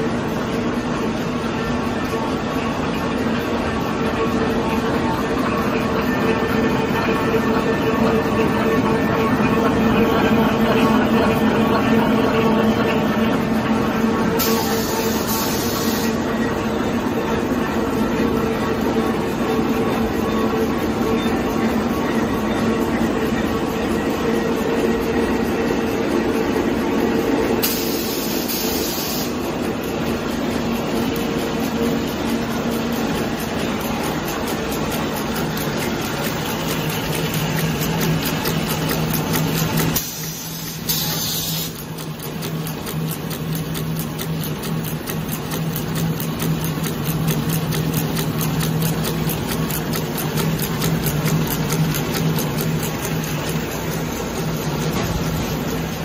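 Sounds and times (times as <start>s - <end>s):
machine clattering with hum: 0.0s - 56.0s.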